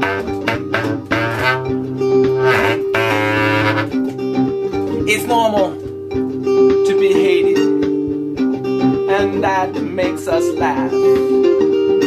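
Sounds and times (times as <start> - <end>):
bass clarinet playing: 0.0 - 4.1
plucked string accompaniment: 0.0 - 12.0.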